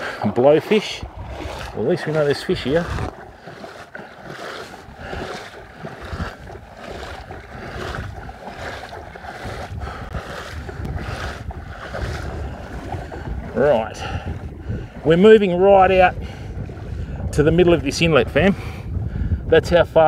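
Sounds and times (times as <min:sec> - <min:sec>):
legs wading through water: 0:00.0 - 0:19.0
wind rumbling on microphone: 0:00.0 - 0:20.0.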